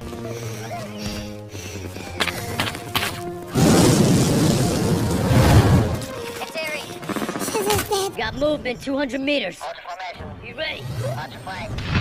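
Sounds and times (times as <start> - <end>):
film music score: 0.0 - 12.0.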